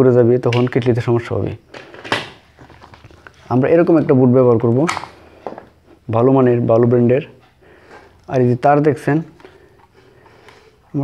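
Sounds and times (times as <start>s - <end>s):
man speaking: 0.0s - 1.6s, 3.4s - 5.2s, 6.0s - 7.4s, 8.2s - 9.4s.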